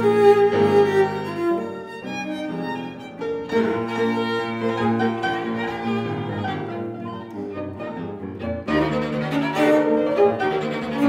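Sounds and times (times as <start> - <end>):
cello: 0.0 - 11.0
fortepiano: 0.0 - 11.0
violin: 0.0 - 11.0.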